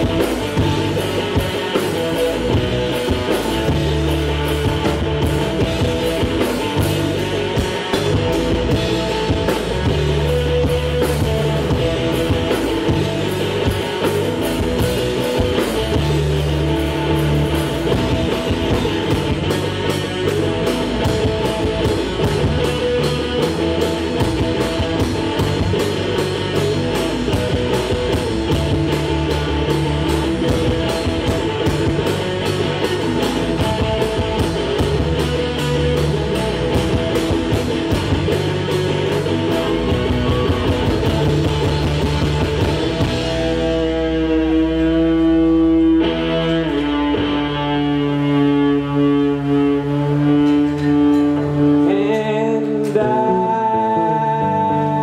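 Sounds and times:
drum kit with cymbal strokes: 0.0s - 53.1s
electric bass: 0.0s - 55.0s
electric guitar: 0.0s - 55.0s.

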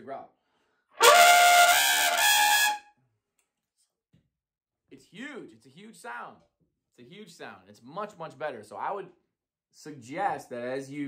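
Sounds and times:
trumpet growl note: 1.0s - 2.8s.

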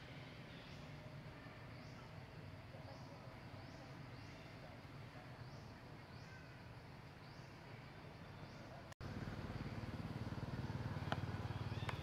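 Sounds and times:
low engine running: 9.0s - 12.0s.

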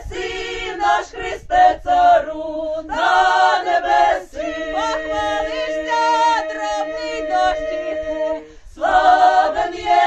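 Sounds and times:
choir singing in close harmony: 0.0s - 10.0s
singers breathing: 8.4s - 8.8s.

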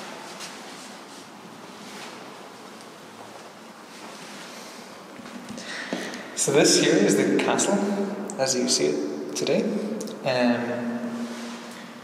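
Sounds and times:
indoor room hiss: 0.0s - 12.0s.

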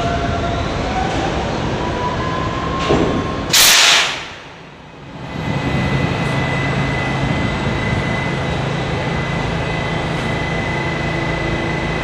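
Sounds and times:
subway train rumbling: 0.0s - 12.0s
short burst of noise: 3.5s - 4.6s.

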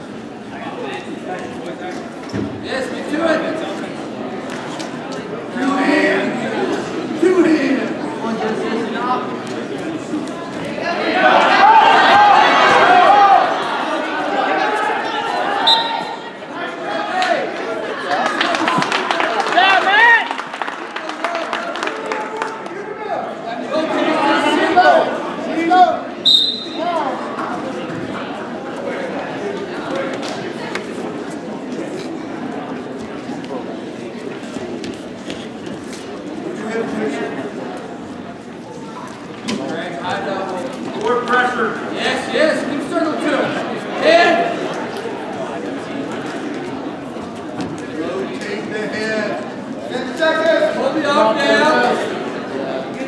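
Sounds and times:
spectators shouting: 11.0s - 17.5s
referee's whistle blast: 15.6s - 16.2s, 26.2s - 26.9s.

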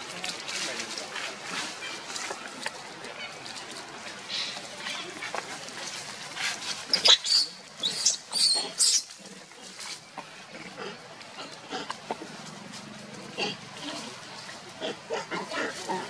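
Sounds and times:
rustling: 0.0s - 10.4s
monkey calls: 6.6s - 9.8s
macaques screaming: 6.9s - 9.1s.

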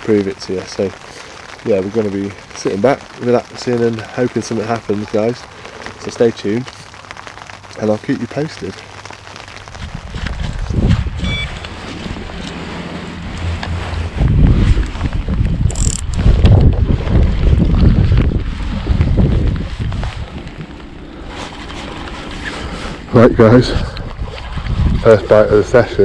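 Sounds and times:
clothing rustle: 8.8s - 15.6s, 17.2s - 23.2s
wind buffeting microphone: 9.4s - 26.0s.

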